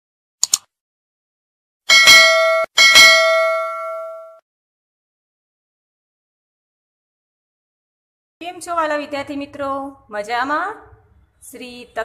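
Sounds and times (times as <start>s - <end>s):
bright bell ding: 1.9s - 4.4s.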